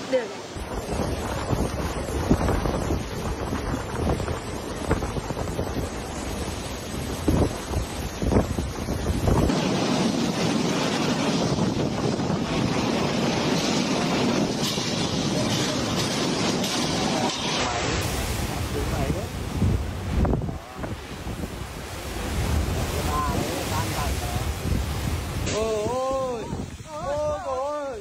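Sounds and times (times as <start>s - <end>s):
heavy driven rain: 0.0s - 28.0s
strong wind buffeting microphone: 0.4s - 28.0s.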